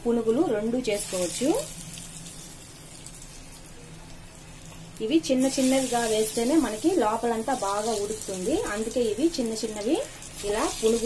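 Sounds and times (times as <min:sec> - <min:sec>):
food sizzling in hot oil: 0:00.1 - 0:11.0.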